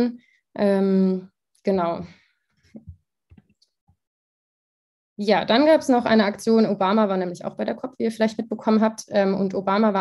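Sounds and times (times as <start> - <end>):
person speaking: 5.2 - 10.0.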